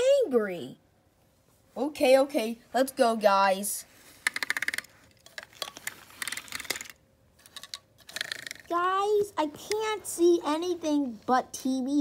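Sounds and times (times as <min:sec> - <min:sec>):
plastic toy trains clicking and rattling: 0:04.2 - 0:08.8.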